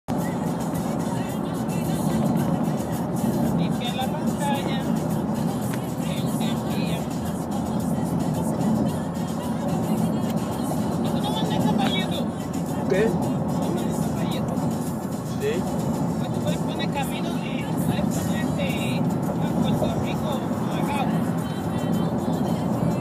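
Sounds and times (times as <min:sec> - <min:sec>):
car road and engine noise: 0:00.0 - 0:23.0
music: 0:00.1 - 0:23.0.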